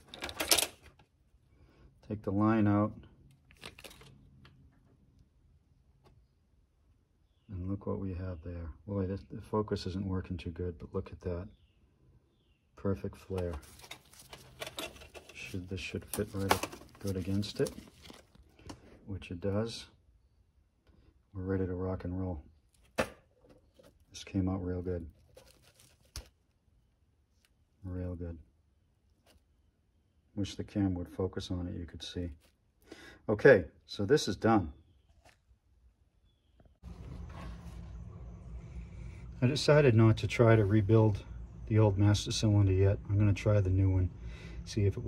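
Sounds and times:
gloved hand handling noises: 0:03.1 - 0:05.2, 0:13.2 - 0:19.0, 0:25.0 - 0:27.8
faint metal clicks and scrapes: 0:13.3 - 0:18.9.

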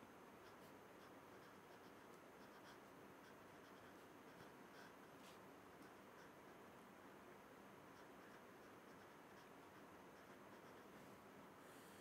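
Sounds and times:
steady background hiss: 0:00.0 - 0:12.0
marker scratching on paper: 0:00.4 - 0:06.6, 0:07.9 - 0:11.1.

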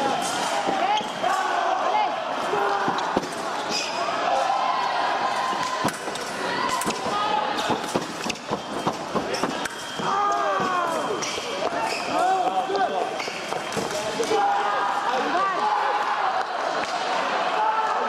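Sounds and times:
shoes squeaking and stamping: 0:06.8 - 0:14.1.

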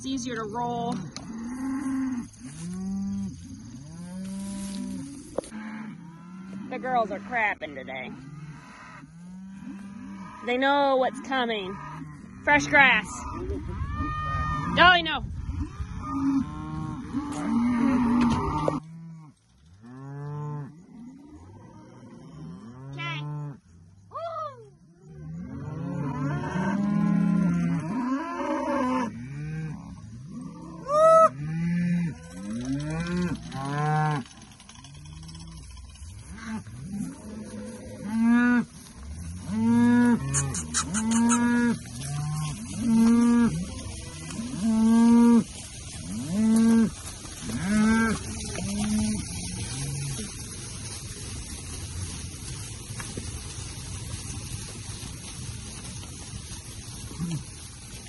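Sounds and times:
cows mooing: 0:00.1 - 0:23.6, 0:25.0 - 0:51.3.

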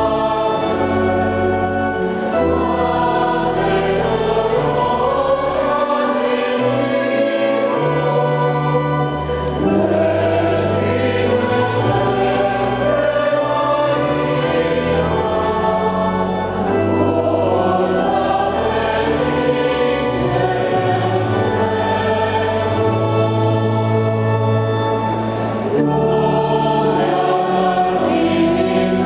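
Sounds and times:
choir singing: 0:00.0 - 0:29.0
organ holding low notes: 0:00.0 - 0:29.0.

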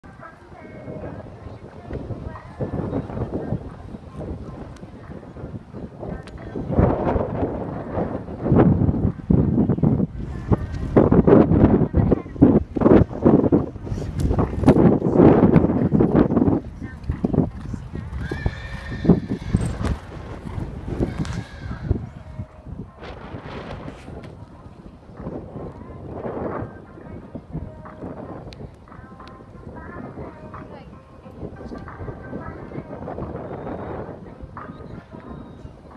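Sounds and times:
horse hoofbeats on sand: 0:15.6 - 0:22.0.

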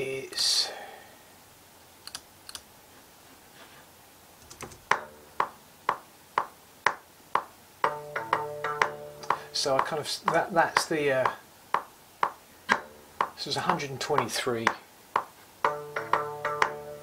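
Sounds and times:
faint clicks: 0:02.0 - 0:02.7
sharp ticking beat: 0:04.5 - 0:17.0.

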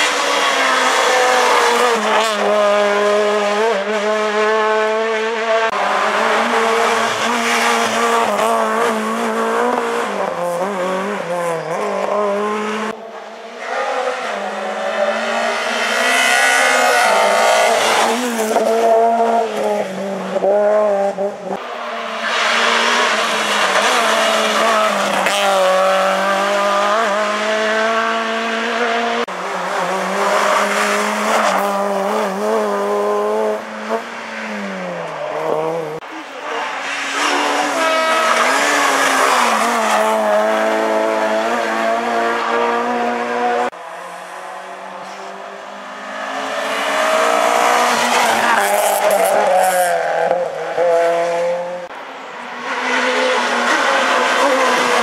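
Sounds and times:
car engines revving: 0:00.0 - 0:55.0.

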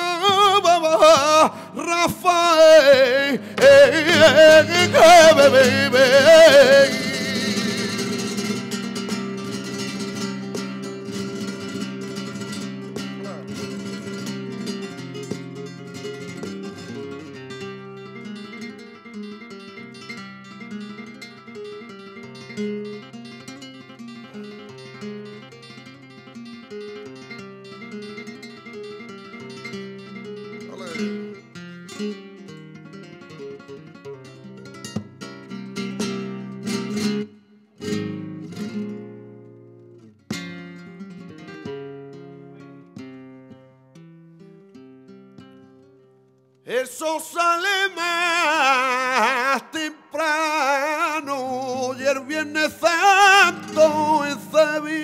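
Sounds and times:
flamenco guitar solo: 0:00.0 - 0:55.0.

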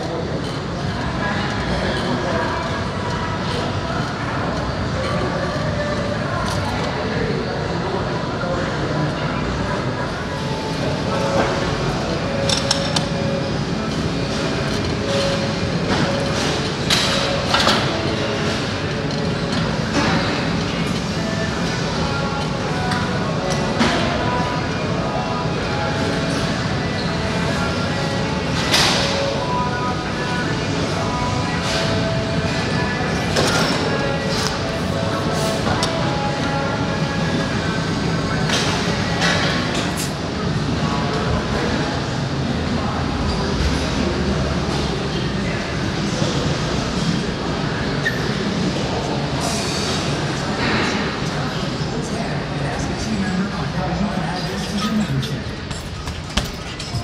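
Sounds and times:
people talking: 0:00.0 - 0:57.0.

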